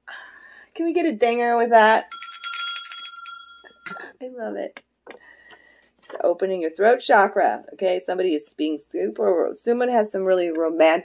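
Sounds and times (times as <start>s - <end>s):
high-pitched bell trill: 2.1s - 4.0s.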